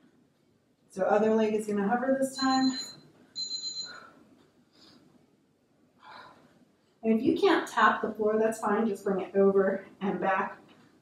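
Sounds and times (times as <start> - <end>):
high electronic timer beep: 2.4 - 4.0.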